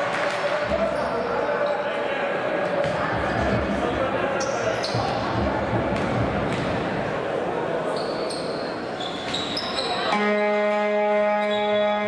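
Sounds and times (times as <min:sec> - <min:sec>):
murmuring voices: 0:00.0 - 0:10.1
shoe squeaks on court: 0:07.9 - 0:10.1.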